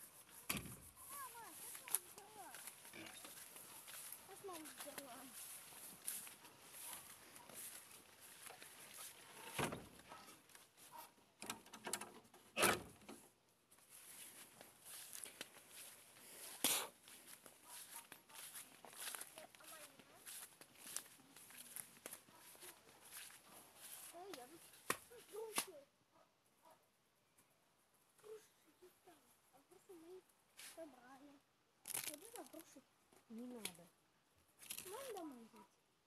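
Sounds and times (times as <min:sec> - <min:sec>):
footsteps through grass: 0:00.0 - 0:11.1, 0:13.7 - 0:25.8, 0:31.9 - 0:32.7, 0:34.6 - 0:35.4
plants rustling against camera: 0:00.0 - 0:11.1, 0:13.1 - 0:25.7, 0:31.8 - 0:33.9, 0:34.6 - 0:35.6.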